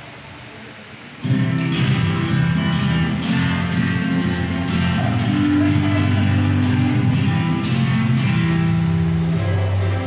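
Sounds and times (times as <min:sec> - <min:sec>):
ukulele ensemble strumming: 0:01.2 - 0:10.0.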